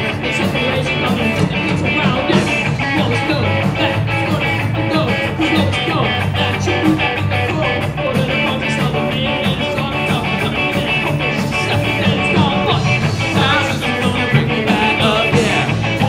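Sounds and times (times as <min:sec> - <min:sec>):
live ska-punk band playing: 0:00.0 - 0:16.0.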